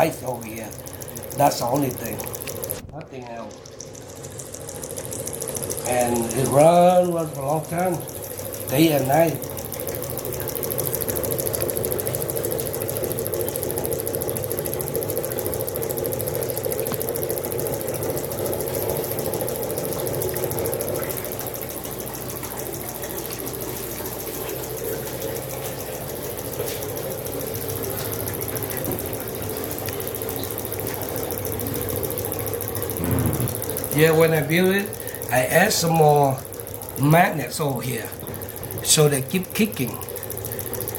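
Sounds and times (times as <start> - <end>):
motor humming with rapid pulsing: 0.0 - 40.9.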